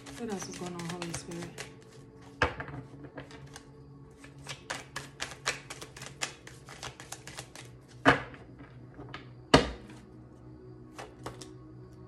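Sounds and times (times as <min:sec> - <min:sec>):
cards being shuffled: 0:00.0 - 0:08.0, 0:10.9 - 0:11.6.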